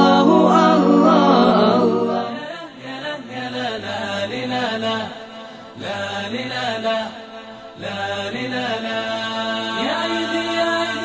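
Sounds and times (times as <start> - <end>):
low held tone: 0.0 - 2.4
wordless sung melody: 0.0 - 7.2.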